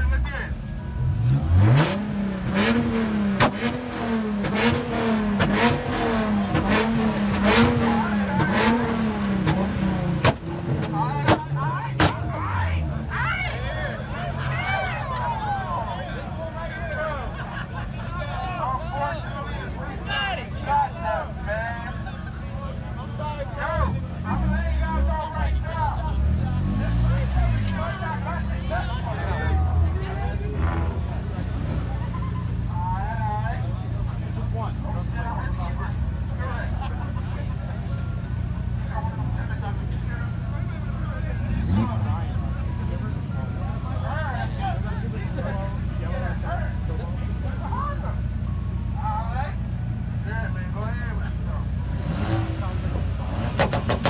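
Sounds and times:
car engine revving: 0.0s - 15.2s, 22.8s - 49.0s, 49.6s - 54.0s
car engines idling: 0.0s - 54.0s
large crowd chattering: 0.0s - 54.0s.

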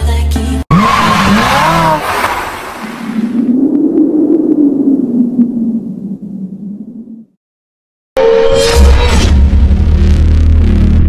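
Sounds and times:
music: 0.0s - 0.7s, 8.4s - 11.0s
car engine noise: 0.7s - 3.6s.

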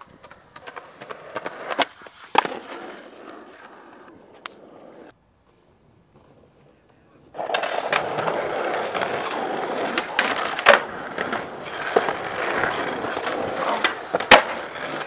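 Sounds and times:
skateboard clacks: 0.0s - 5.2s, 6.1s - 15.0s
skateboard wheels rolling on concrete: 0.0s - 15.0s.

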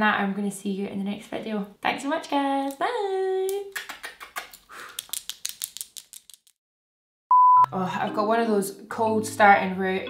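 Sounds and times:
short high beep: 7.3s - 7.7s.

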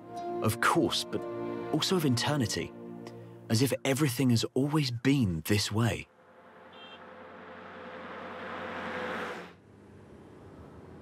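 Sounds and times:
truck engine and tyre noise: 6.1s - 11.0s.

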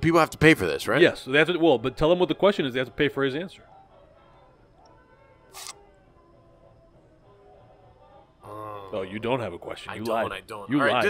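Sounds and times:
faint background music: 0.0s - 11.0s
short hiss: 5.5s - 5.8s.

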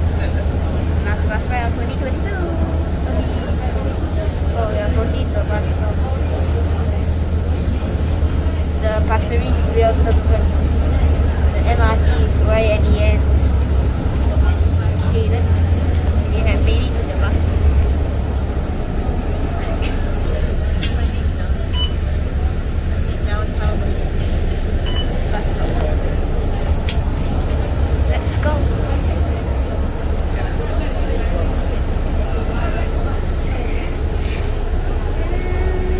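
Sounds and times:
bus engine droning: 0.0s - 35.9s
faint murmur of voices: 0.0s - 35.9s.

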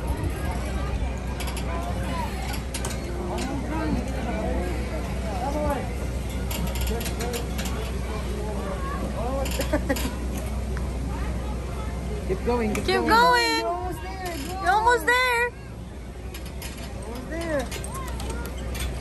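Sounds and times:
carabiners clicking on steel cable: 1.4s - 3.6s, 16.3s - 19.0s.

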